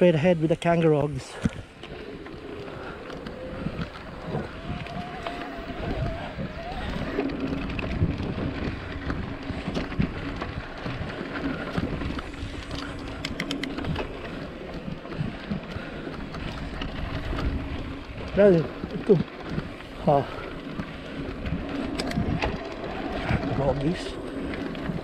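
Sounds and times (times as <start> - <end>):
bike rattling over bumps: 0.0 - 25.0
tyres rumbling on dirt: 0.0 - 25.0
wind on microphone: 1.3 - 25.0.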